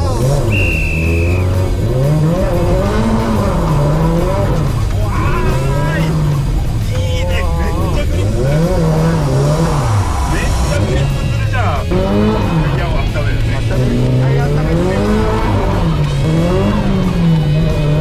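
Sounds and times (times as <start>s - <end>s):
sports car engine revving: 0.0s - 18.0s.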